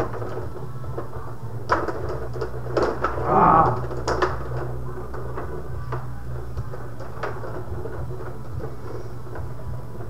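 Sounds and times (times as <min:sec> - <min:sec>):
table hockey clacks: 0:00.0 - 0:10.0
low hum: 0:03.0 - 0:06.6.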